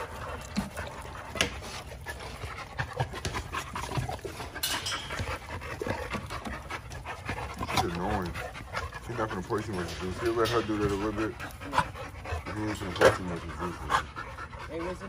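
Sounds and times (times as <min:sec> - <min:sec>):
dogs panting: 0:00.0 - 0:15.0
dogs snuffling and scuffling: 0:00.0 - 0:15.0.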